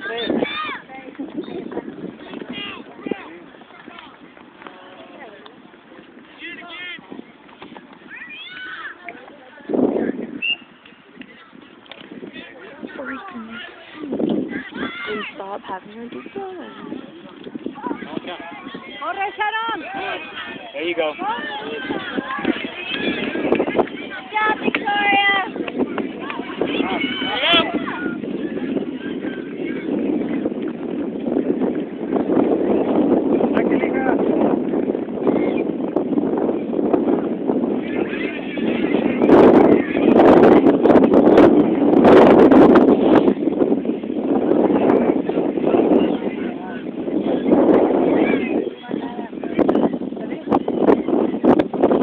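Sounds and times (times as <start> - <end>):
children shouting calls: 0.0 - 1.0, 8.0 - 9.2, 13.0 - 15.4, 17.8 - 29.9
faint background chatter: 0.0 - 52.0
wind rumbling on microphone: 0.0 - 52.0.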